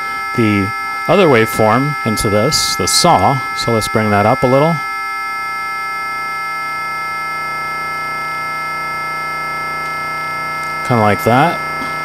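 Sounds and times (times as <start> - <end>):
steady synthesizer tone: 0.0 - 12.0.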